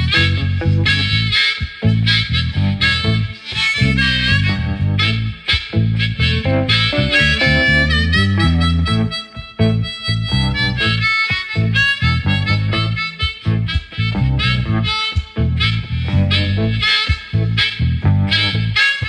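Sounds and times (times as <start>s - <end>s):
blues harmonica solo: 0.0s - 19.0s
guitar band accompaniment: 0.0s - 19.0s.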